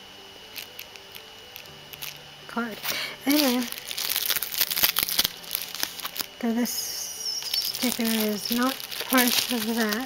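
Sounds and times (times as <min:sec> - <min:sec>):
packaging crinkling: 0:00.5 - 0:10.0.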